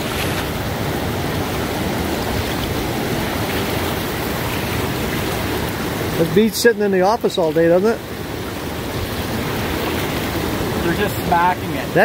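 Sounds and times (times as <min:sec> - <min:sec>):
river rushing over rapids: 0:00.0 - 0:12.0.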